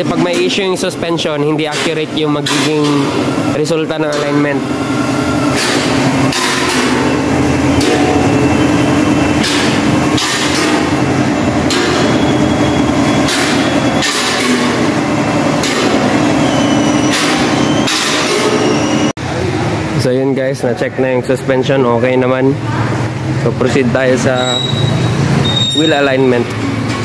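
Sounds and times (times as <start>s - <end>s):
mechanical hum: 0.0s - 27.0s.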